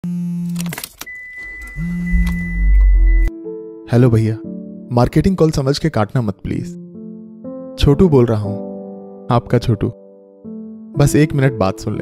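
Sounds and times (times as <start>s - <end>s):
mobile phone vibrating: 0.0s - 0.6s, 1.7s - 3.3s
steady high beep: 1.1s - 3.3s.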